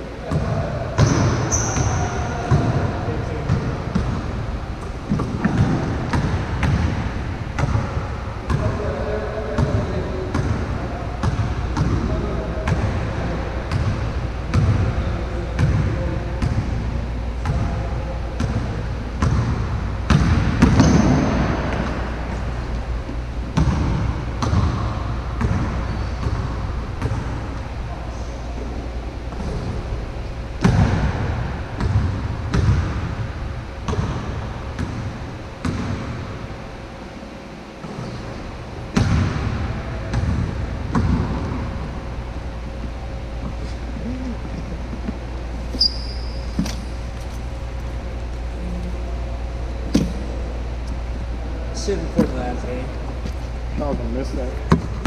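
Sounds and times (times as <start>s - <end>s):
basketball bouncing on court: 0.3s - 4.3s, 5.0s - 8.8s, 9.4s - 13.0s, 13.7s - 14.9s, 15.6s - 17.8s, 18.4s - 22.1s, 23.5s - 27.4s, 30.6s - 33.2s, 33.8s - 36.4s, 38.9s - 41.7s.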